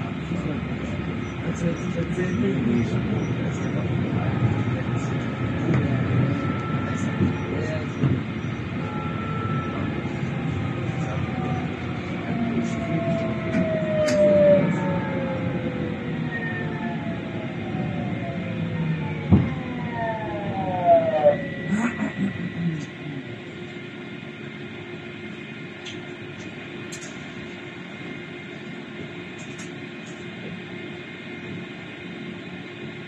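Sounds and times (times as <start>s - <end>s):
tram rumbling on rails: 0.0s - 33.0s.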